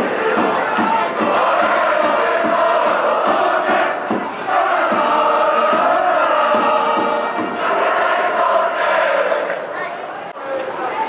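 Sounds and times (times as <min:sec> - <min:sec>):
steady drum beat: 0:00.0 - 0:08.8
brass band playing held notes: 0:00.0 - 0:09.3
crowd chanting in unison: 0:00.0 - 0:10.3.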